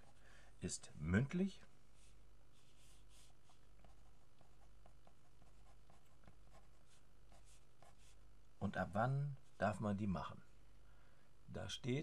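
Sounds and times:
felt-tip pen scratching on paper: 2.6 - 8.2.

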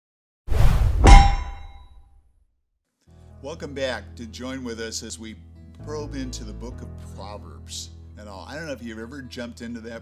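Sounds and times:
loud metallic clang: 0.6 - 1.9.

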